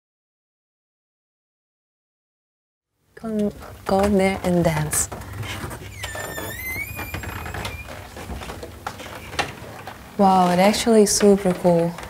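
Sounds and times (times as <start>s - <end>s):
door hinge squeaking: 5.4s - 8.2s.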